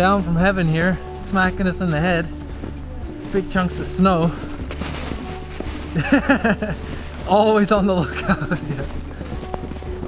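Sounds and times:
man laughing: 5.9 - 6.9, 8.0 - 8.9.

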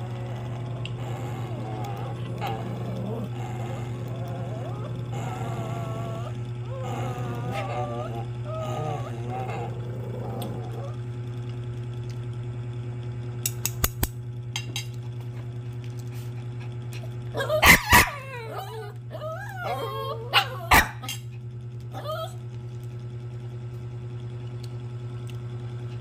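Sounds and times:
dog yelping: 0.0 - 11.0, 17.4 - 21.2, 21.9 - 22.4
steady low hum: 0.0 - 26.0
dog barking: 17.4 - 18.5, 19.6 - 21.2.

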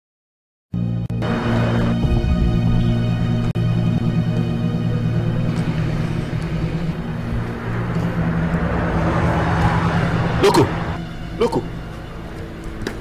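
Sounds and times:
vehicle passing: 1.2 - 13.0.

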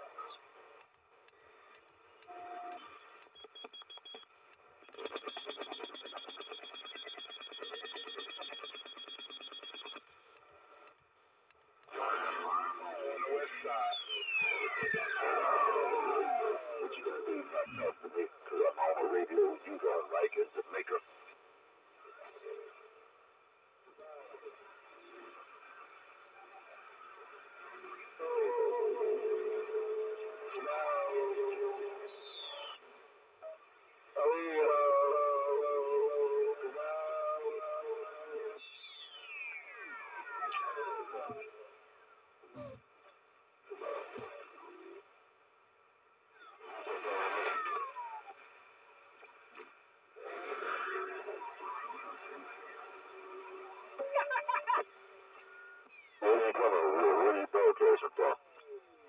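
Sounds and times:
distorted radio voices: 0.3 - 11.0, 11.6 - 21.4, 42.5 - 42.8, 43.7 - 45.0, 56.2 - 58.6
radio static hiss: 4.8 - 10.0.

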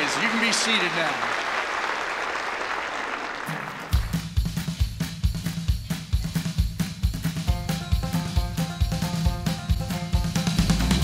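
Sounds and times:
audience applauding: 0.0 - 4.2.

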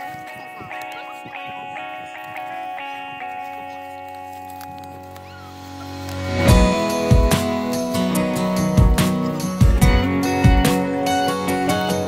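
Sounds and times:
sustained music chord: 4.1 - 12.0.

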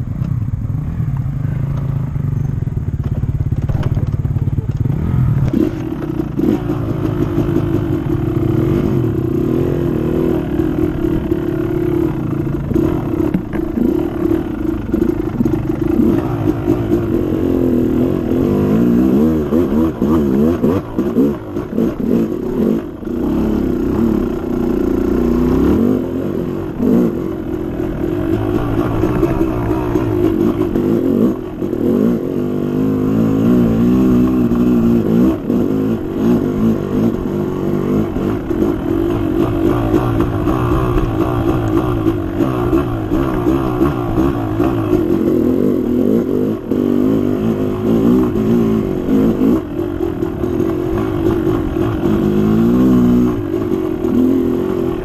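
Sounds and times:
dirt bike engine revving: 4.2 - 55.0.

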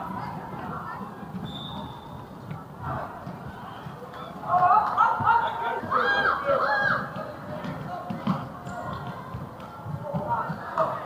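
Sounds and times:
footsteps on wooden court: 7.1 - 11.0.

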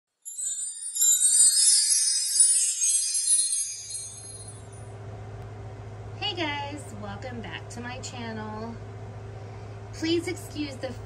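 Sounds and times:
high-pitched intro jingle: 0.2 - 5.0
electric fan humming: 0.3 - 11.0.

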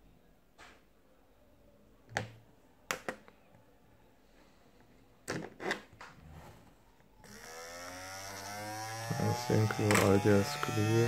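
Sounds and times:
epilator motor spinning up: 7.2 - 11.0.

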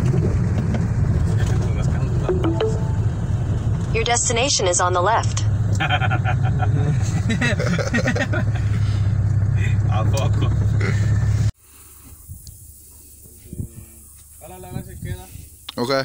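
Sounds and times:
vehicle engine and tyres on dirt: 0.0 - 4.0, 5.1 - 15.7
quiet outdoor ambience: 10.9 - 16.0.

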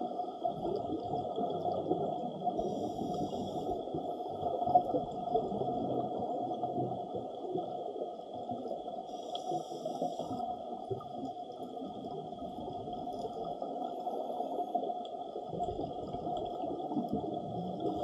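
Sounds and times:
faint steady tones: 0.0 - 18.0.

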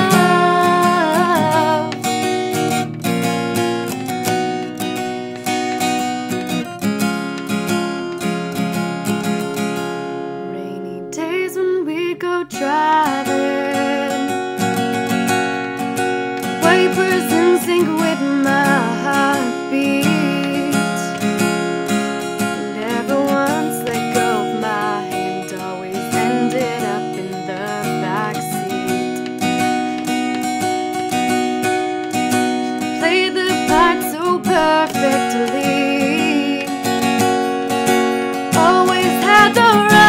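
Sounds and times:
woman singing: 0.0 - 2.8, 10.3 - 15.0, 16.4 - 40.0
acoustic guitar strumming: 0.0 - 40.0.

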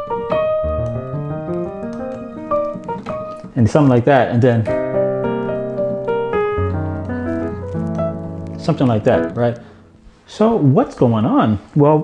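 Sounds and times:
slow piano chords: 0.0 - 10.3.

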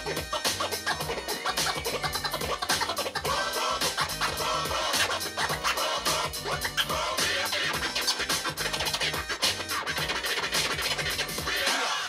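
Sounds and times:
backing beat with bass line: 0.0 - 11.9
turntable scratching: 0.0 - 12.0.

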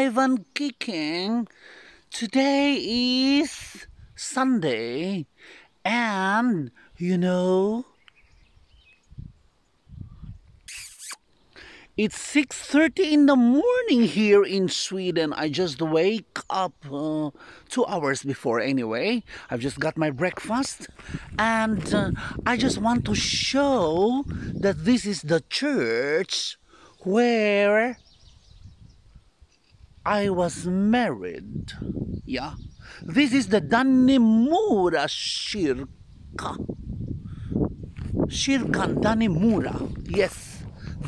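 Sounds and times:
person speaking: 0.0 - 1.5, 2.1 - 7.9, 10.7 - 28.0, 30.0 - 36.7, 38.3 - 41.0
faint bird chirps: 7.9 - 11.8, 28.0 - 30.0
low rumbles on microphone: 9.0 - 10.6, 20.8 - 24.9, 28.0 - 29.2, 29.8 - 32.9, 35.8 - 41.0
short hiss: 10.6 - 11.3.

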